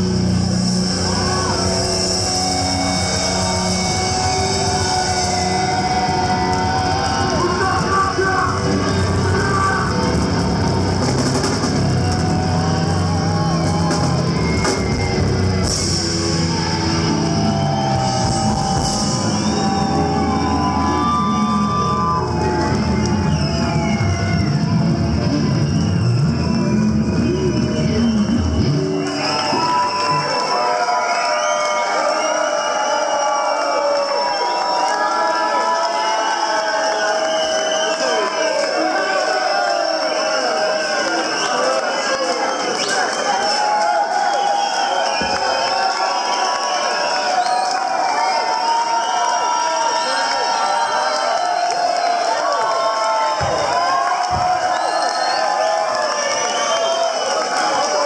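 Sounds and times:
bass guitar: 0:00.0 - 0:29.6
drum kit: 0:00.0 - 0:29.6.

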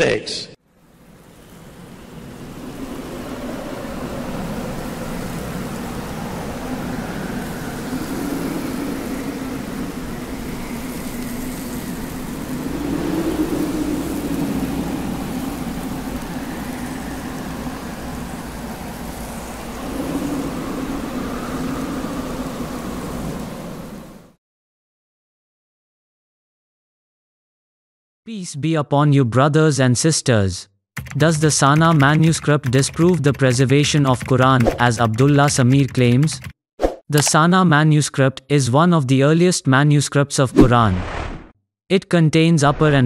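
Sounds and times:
dark rumbling drone: 0:01.9 - 0:24.2.

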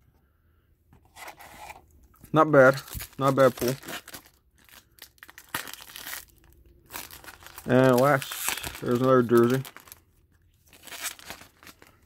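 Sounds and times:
card pack rustling scrape: 0:01.0 - 0:01.8.

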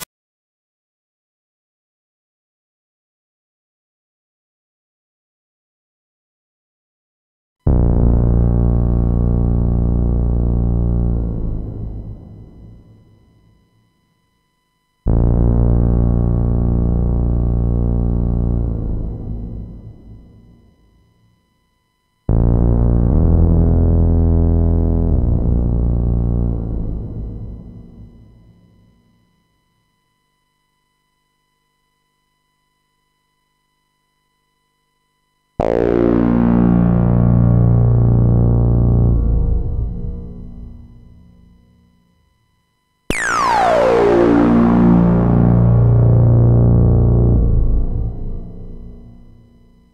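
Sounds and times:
low sustained synthesizer note: 0:07.7 - 0:14.2, 0:14.9 - 0:30.4, 0:35.4 - 0:49.9.

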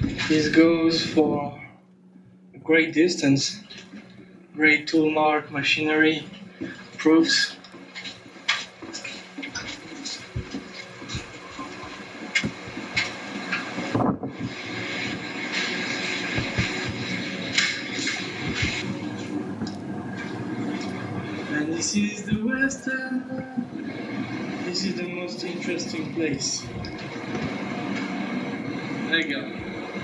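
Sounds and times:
indistinct people talking: 0:00.0 - 0:01.8, 0:02.6 - 0:30.0.

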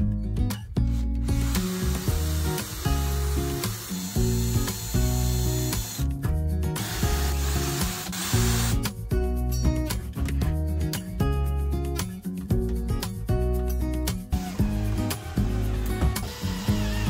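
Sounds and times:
acoustic guitar music: 0:00.0 - 0:17.0
cordless drill boring into wood: 0:01.3 - 0:06.1, 0:06.8 - 0:08.8, 0:14.4 - 0:17.0.

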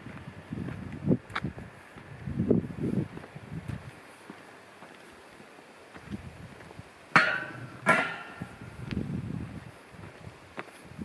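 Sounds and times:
sharp knocks with ringing tail: 0:07.2 - 0:08.5.

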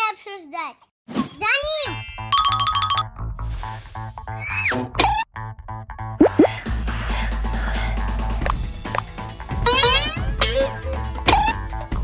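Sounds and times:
background music: 0:01.8 - 0:12.0.

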